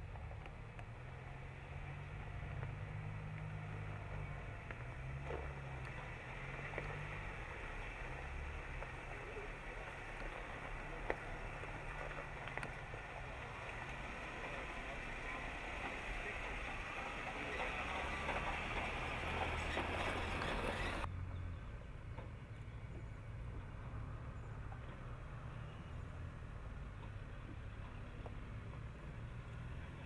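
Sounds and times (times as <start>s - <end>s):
off-road vehicle engine running: 0.0s - 30.0s
tyres rolling over rock: 1.9s - 21.1s.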